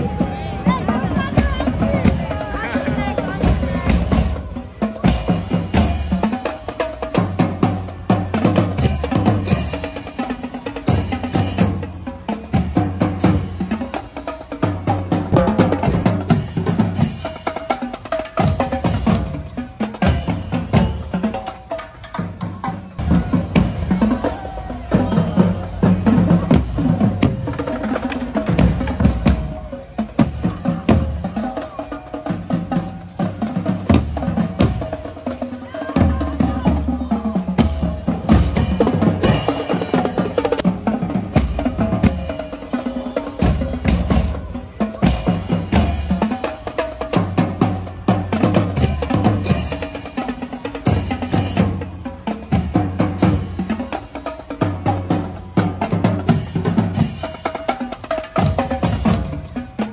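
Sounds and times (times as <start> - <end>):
snare drums: 0.0 - 59.9
tenor drums: 0.0 - 59.9.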